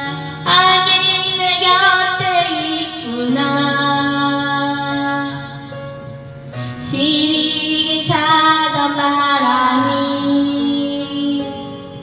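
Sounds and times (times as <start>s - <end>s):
woman singing into microphone: 0.0s - 5.8s, 6.6s - 12.0s
karaoke backing track: 0.0s - 12.0s.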